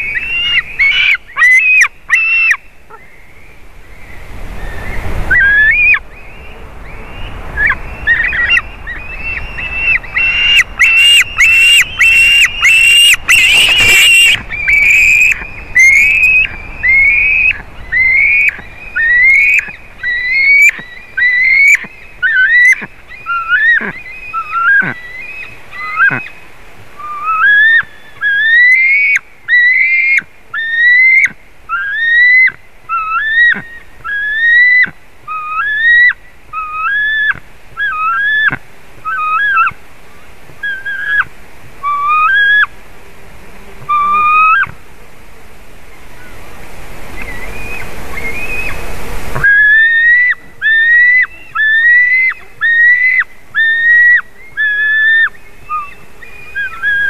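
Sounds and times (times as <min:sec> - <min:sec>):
eagle begging calls: 0:00.0 - 0:03.1, 0:05.3 - 0:26.4, 0:27.0 - 0:39.8, 0:40.6 - 0:42.7, 0:43.8 - 0:44.8, 0:47.2 - 0:57.0.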